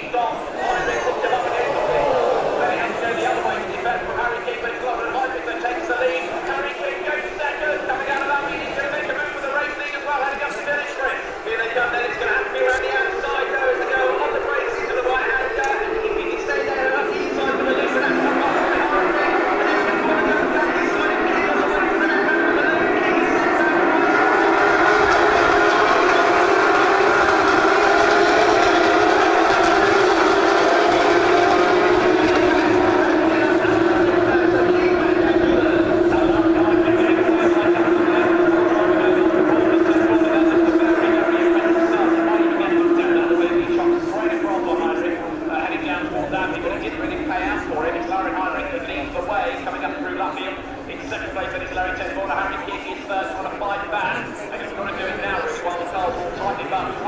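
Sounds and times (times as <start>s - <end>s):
racing cars at full throttle: 0.0s - 57.0s.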